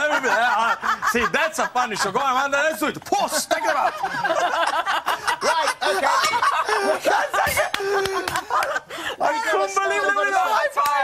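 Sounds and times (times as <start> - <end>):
people laughing together: 0.0 - 10.8.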